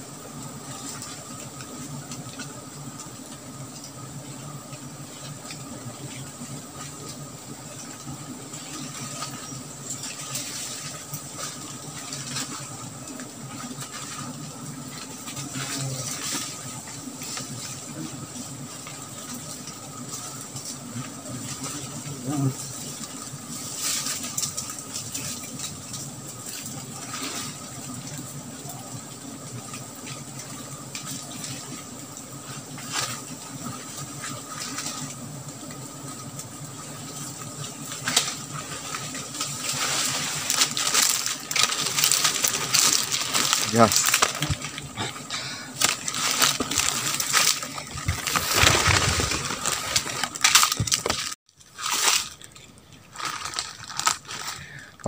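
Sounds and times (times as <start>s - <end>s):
leaves and branches rustling: 0.0s - 55.0s.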